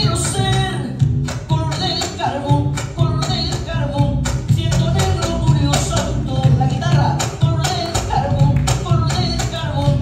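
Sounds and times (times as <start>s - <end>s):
acoustic guitars: 0.0s - 10.0s
cajon drumming: 0.0s - 10.0s
electric bass: 0.0s - 10.0s
woman singing: 0.0s - 10.0s.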